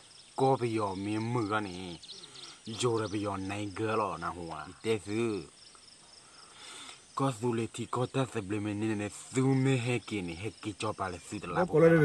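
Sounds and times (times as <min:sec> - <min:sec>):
faint insect chirps: 0:00.0 - 0:12.0
man talking: 0:00.4 - 0:05.5, 0:07.1 - 0:12.0.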